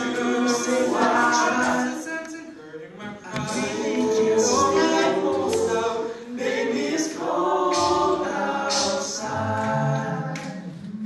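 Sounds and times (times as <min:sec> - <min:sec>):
male a cappella group singing: 0:00.0 - 0:11.0.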